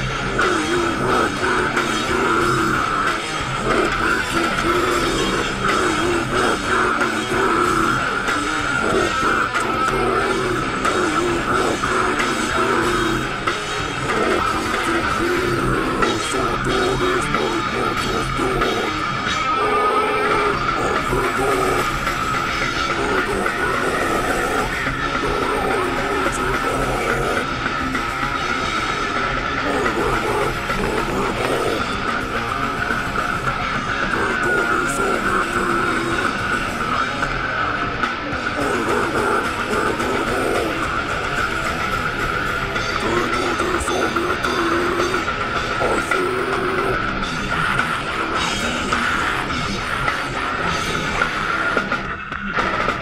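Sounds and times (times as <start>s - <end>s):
death metal song: 0.0s - 53.0s.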